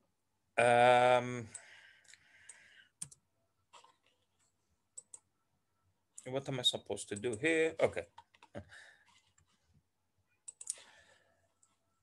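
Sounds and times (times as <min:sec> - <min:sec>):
faint mouse clicks: 0:01.5 - 0:03.2, 0:04.9 - 0:05.3, 0:10.4 - 0:11.0.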